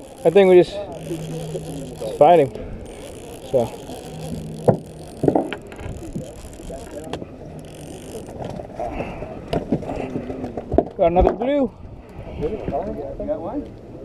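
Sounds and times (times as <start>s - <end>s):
fishing reel cranking: 0.0s - 9.2s
voices of anglers: 0.0s - 14.0s.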